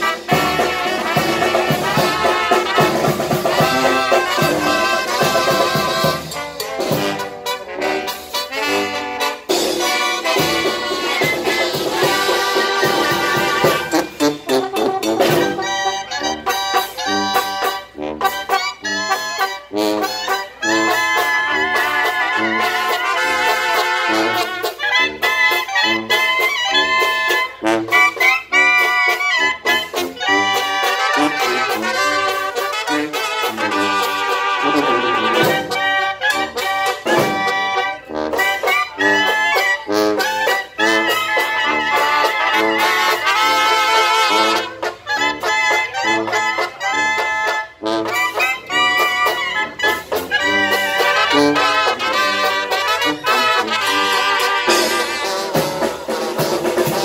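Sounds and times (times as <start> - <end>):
brass band playing: 0.0 - 57.0.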